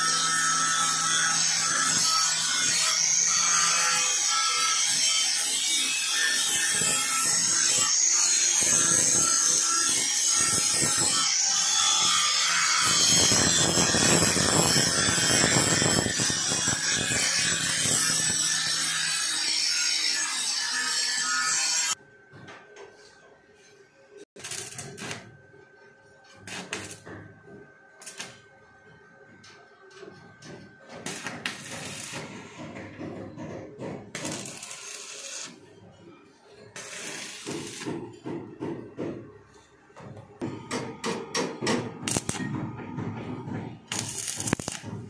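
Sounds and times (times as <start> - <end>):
angle grinder grinding metal: 0.0 - 22.0, 34.2 - 35.6, 43.9 - 45.0
welding arc crackling and sizzling: 0.3 - 22.0, 24.4 - 25.4, 26.4 - 27.0, 28.0 - 28.4, 31.0 - 32.5, 34.1 - 35.6, 36.8 - 37.9, 42.0 - 42.5, 43.9 - 45.0.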